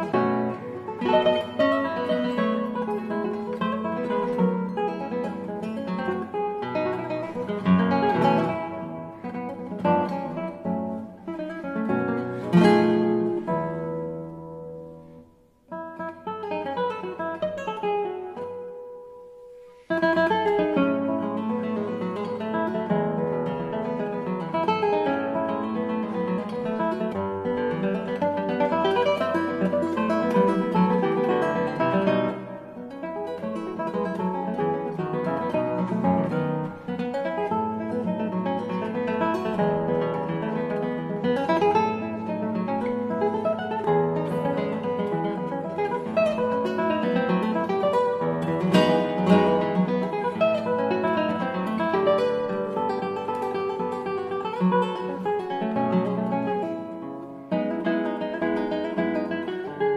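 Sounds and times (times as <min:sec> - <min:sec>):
solo classical guitar: 0:00.0 - 0:59.9.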